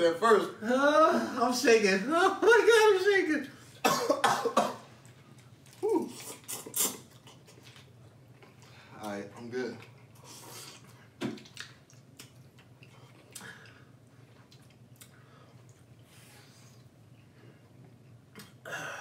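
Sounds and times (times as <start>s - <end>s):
man coughing: 3.8s - 4.9s.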